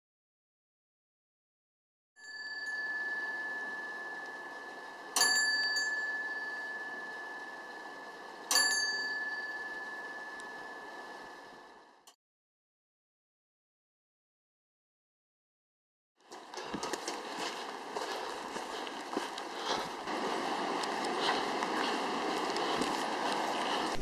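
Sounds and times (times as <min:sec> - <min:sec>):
prayer wheel bell ringing: 0:02.2 - 0:11.8.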